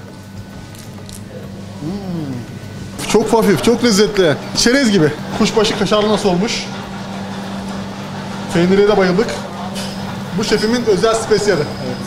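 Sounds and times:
steady low hum: 0.0s - 12.0s
man humming appreciatively: 1.7s - 2.7s.

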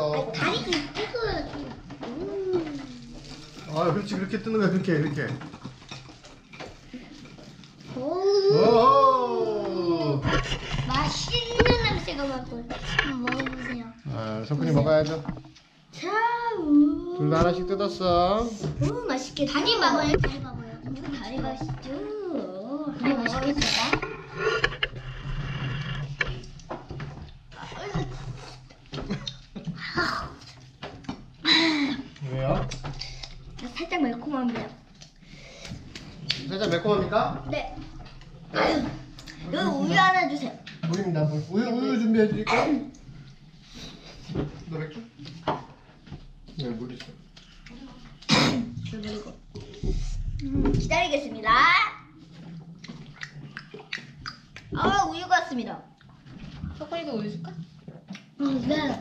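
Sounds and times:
child gulping water: 52.2s - 54.7s
mouth clicks: 52.8s - 54.7s.

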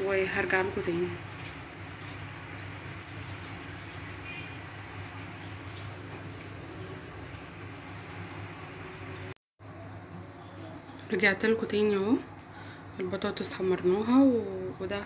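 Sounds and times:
food sizzling: 0.0s - 15.0s.

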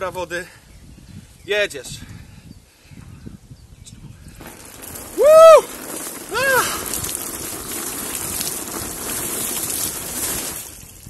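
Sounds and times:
water splashing from a bucket: 4.4s - 11.0s.

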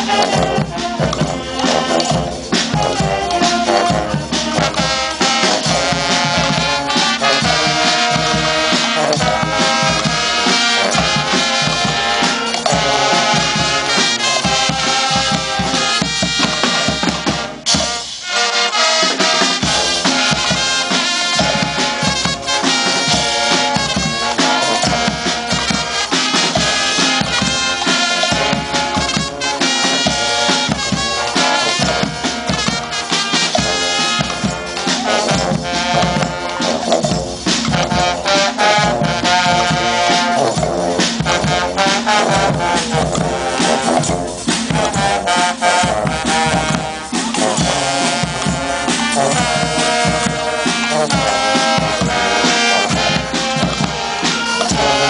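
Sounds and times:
brass band playing: 0.0s - 55.0s
big bass drum: 19.7s - 55.0s.

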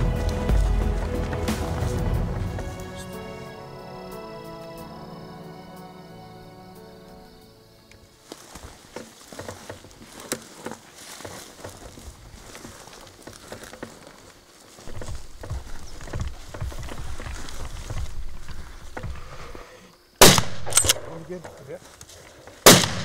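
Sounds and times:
footsteps in dry grass: 0.0s - 3.5s, 7.4s - 23.0s.

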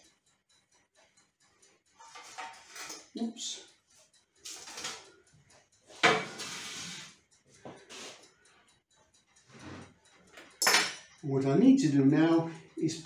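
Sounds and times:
kitchenware clattering: 2.0s - 3.0s, 4.4s - 5.0s, 6.0s - 6.8s, 10.4s - 11.1s
wire rack scraping wooden board: 6.1s - 7.1s.

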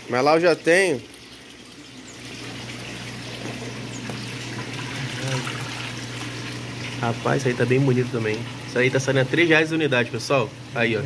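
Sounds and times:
water splashing and trickling: 0.0s - 11.0s.

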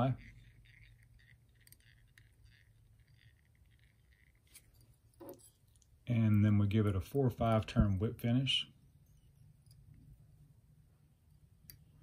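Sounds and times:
soft scratchy thread handling: 0.0s - 6.4s.

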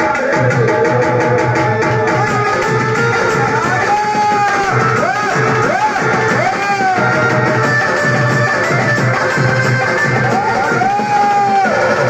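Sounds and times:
steady drum beat: 0.0s - 12.0s.

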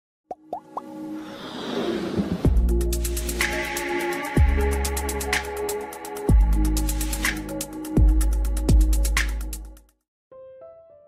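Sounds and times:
swelling riser: 1.1s - 4.0s.

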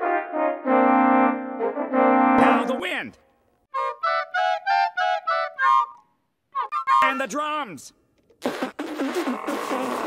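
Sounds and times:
cartoon woodwind notes: 0.0s - 2.8s, 3.7s - 7.2s.

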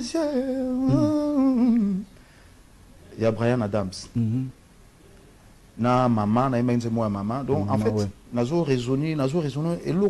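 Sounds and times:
man humming a melody: 0.0s - 2.1s.

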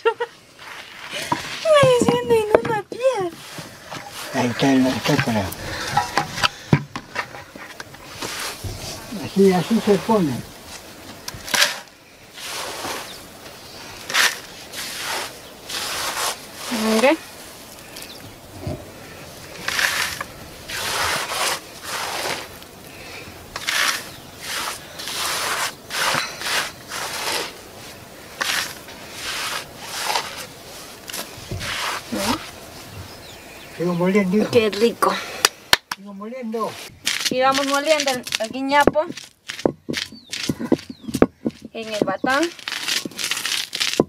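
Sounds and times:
dry kernels falling on stone: 37.0s - 44.0s.

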